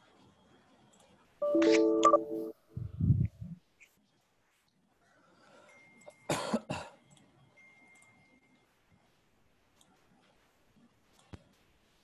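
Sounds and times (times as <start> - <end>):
person coughing: 6.3 - 7.0.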